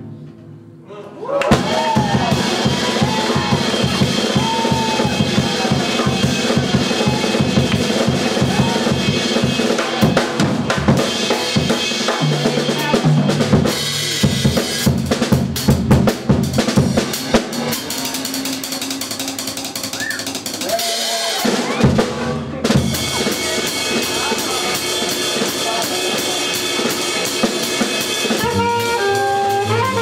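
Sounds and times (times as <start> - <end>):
bass drum strokes: 1.5 - 20.7, 21.6 - 30.0
cymbals: 1.5 - 30.0
tom drum strokes: 1.5 - 30.0.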